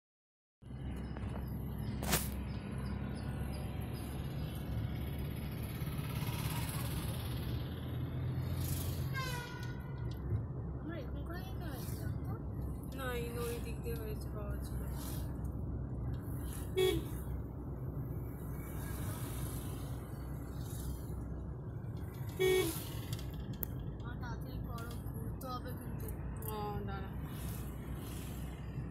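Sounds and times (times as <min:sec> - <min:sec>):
car road and engine noise: 0:00.6 - 0:28.9
vehicle horn toot: 0:09.1 - 0:10.0, 0:16.7 - 0:17.3, 0:22.3 - 0:23.1.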